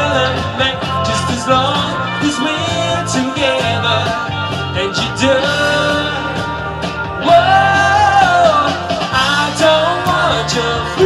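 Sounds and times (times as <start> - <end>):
man singing amplified: 0.0 - 11.0
steady drum beat: 0.0 - 11.0.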